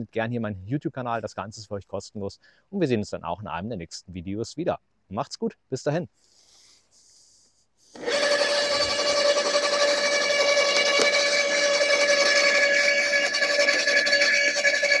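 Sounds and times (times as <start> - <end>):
garden shredder motor whine: 7.9 - 15.0.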